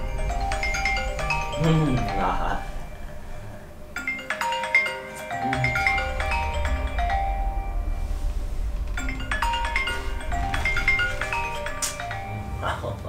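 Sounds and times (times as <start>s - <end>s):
marimba-like phone ringtone: 0.0s - 12.8s.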